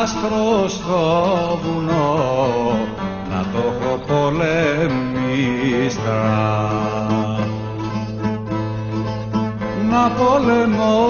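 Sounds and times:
person singing folk song: 0.0 - 11.0
string accompaniment: 0.0 - 11.0.

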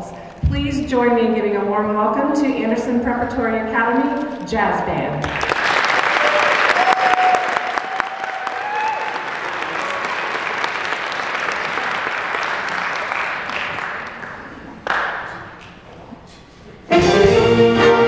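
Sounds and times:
audience applauding: 5.2 - 15.7.

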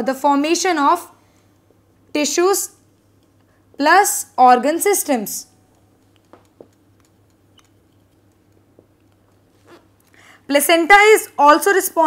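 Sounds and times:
steady low hum: 0.0 - 12.0
light taps: 5.7 - 9.5.

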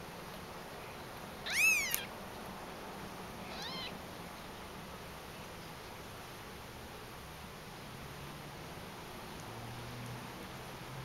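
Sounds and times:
kitten mewing: 1.4 - 2.1, 3.4 - 4.0.

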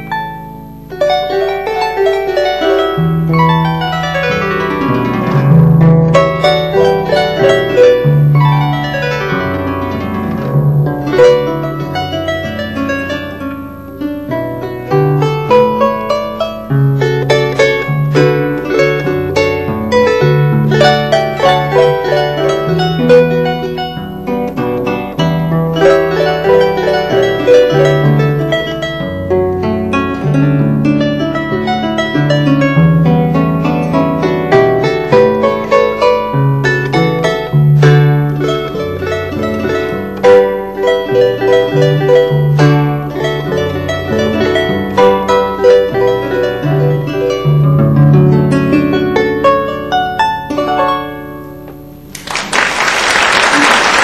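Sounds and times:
harp playing plucked melody: 0.0 - 52.5.

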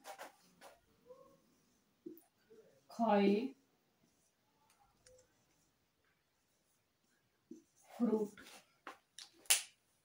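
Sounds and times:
marker writing on a whiteboard: 0.0 - 2.7, 4.0 - 9.1.

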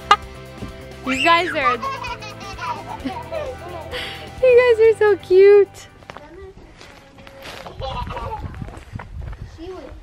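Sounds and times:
background music: 0.0 - 6.7.

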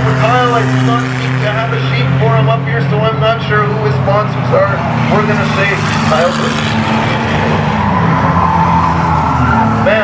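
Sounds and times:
race car engines passing: 0.0 - 10.0.

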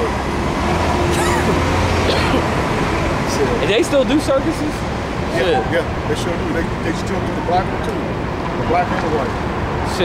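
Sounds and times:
heavy vehicle engine humming: 0.0 - 10.0.

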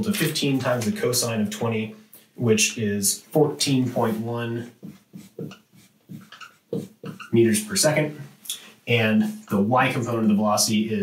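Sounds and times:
marker squeaking on whiteboard: 4.1 - 7.6.

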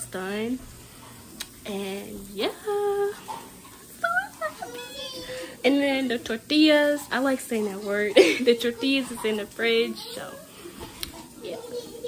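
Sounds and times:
high-pitched vocal sounds: 3.9 - 5.6.

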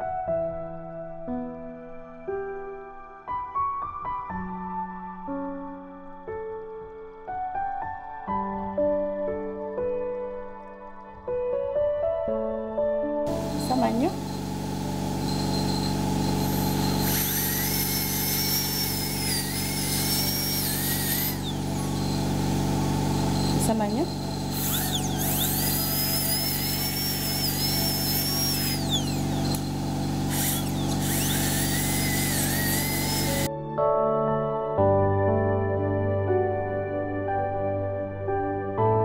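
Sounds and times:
dental drill whining: 13.3 - 33.5.

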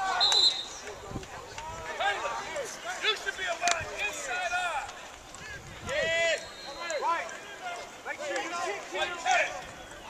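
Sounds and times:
people shouting: 0.0 - 0.8, 5.4 - 10.0
referee's whistle blast: 0.0 - 0.8, 6.3 - 7.1.

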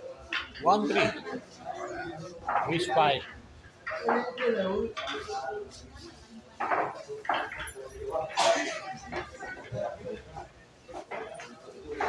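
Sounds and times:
people talking: 3.9 - 12.0.

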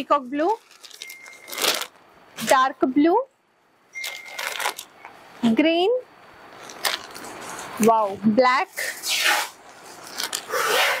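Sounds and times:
person speaking: 7.6 - 8.8.

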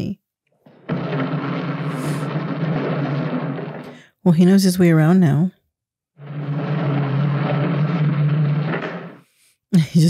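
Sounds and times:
plastic wheels rolling on wood floor: 0.6 - 4.0, 6.2 - 9.3.

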